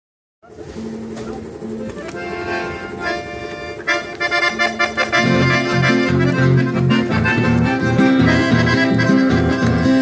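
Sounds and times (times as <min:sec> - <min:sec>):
accordions playing: 0:00.5 - 0:10.0
rhythmic bass and chord pulse: 0:00.9 - 0:10.0.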